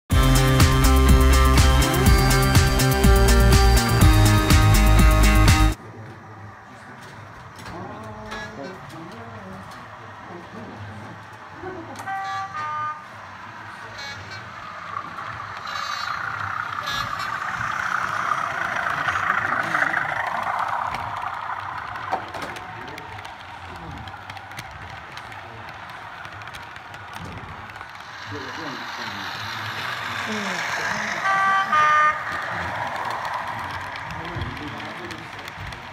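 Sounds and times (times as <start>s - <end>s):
model train rolling on track: 0.1s - 35.9s
train horn tone: 12.0s - 19.4s, 30.0s - 33.1s.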